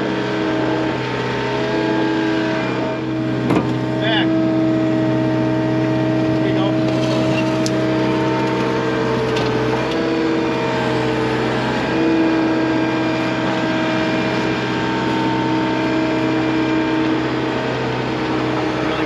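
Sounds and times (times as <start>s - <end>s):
diesel engine under hydraulic load: 0.0s - 19.0s.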